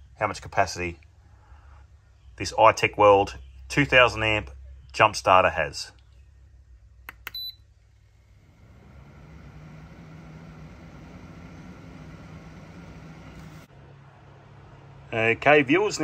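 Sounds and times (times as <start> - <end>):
cooling fan humming: 7.1 - 13.7.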